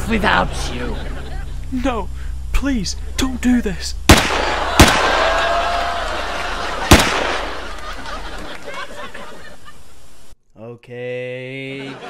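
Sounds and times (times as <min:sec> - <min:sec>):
pistol gunshots with echo: 0:04.1 - 0:05.4, 0:06.9 - 0:07.7.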